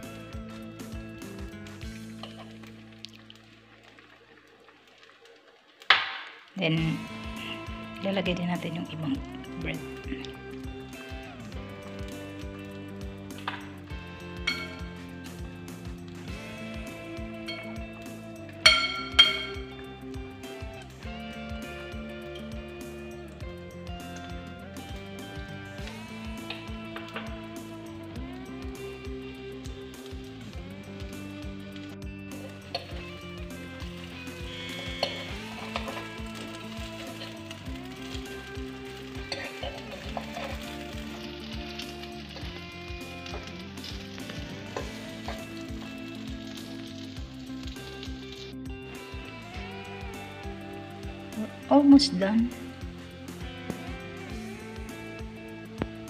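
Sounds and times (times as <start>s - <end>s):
bread sizzling in a pan: 0.0s - 51.7s, 52.6s - 56.0s
background music: 0.0s - 56.0s
fork clinking against glass bowl: 18.7s - 19.7s.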